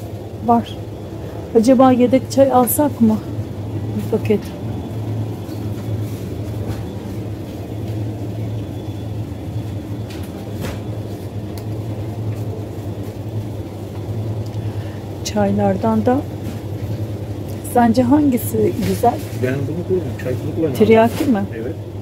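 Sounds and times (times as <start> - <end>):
rumbling background: 0.0 - 22.0
steady low hum: 0.0 - 22.0.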